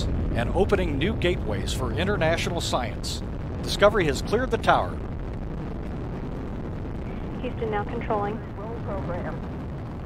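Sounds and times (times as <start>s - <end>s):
rocket engines rumbling: 0.0s - 10.0s.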